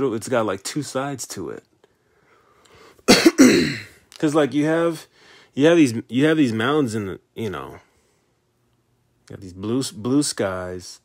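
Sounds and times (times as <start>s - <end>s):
man coughing: 3.1s - 4.0s.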